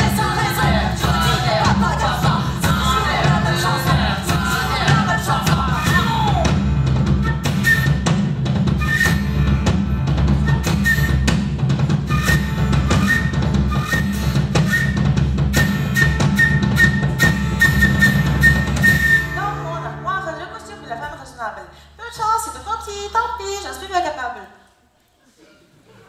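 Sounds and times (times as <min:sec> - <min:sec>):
drum strikes: 0:00.0 - 0:19.3.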